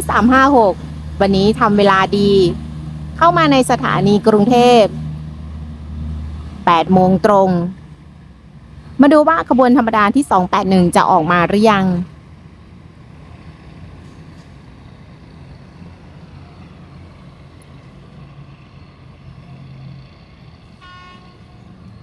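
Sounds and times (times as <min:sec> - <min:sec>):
traffic rumble: 0:00.0 - 0:22.0
short horn toot: 0:20.8 - 0:21.5.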